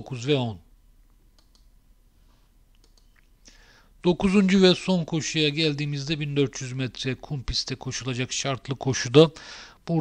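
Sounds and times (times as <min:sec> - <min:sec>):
computer mouse clicks: 0:01.3 - 0:01.7, 0:02.7 - 0:03.3.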